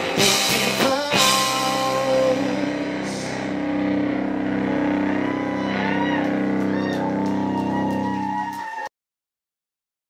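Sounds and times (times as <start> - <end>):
electric guitars sustained chord: 0.0 - 8.5.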